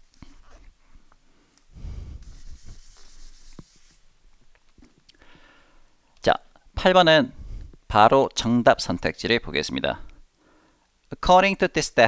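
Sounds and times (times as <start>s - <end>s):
man speaking: 6.2s - 10.1s, 11.1s - 12.0s.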